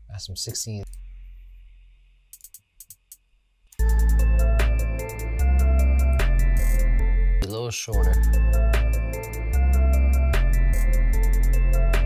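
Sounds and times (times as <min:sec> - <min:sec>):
crisp hi-hat ticks: 0:00.4 - 0:04.3, 0:10.4 - 0:11.8
deep bass of trap beat: 0:03.8 - 0:07.1, 0:08.0 - 0:12.0.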